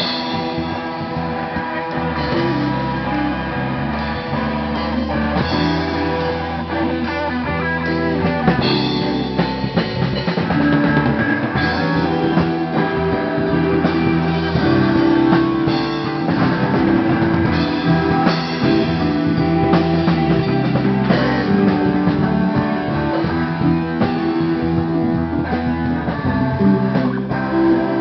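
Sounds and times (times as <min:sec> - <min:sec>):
rock band playing live: 0:00.0 - 0:28.0.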